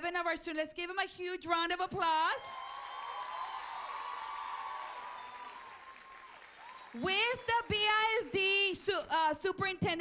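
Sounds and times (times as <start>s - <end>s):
audience applause: 2.5s - 8.8s.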